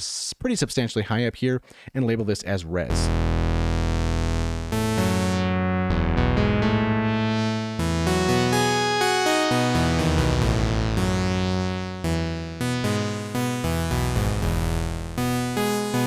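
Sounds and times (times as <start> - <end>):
synthesizer chords: 2.9 - 16.0.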